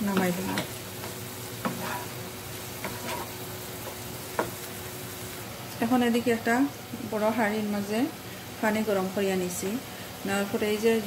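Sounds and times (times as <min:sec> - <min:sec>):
meat sizzling in a frying pan: 0:00.0 - 0:11.0
spatula knocking against pan: 0:03.8 - 0:04.6.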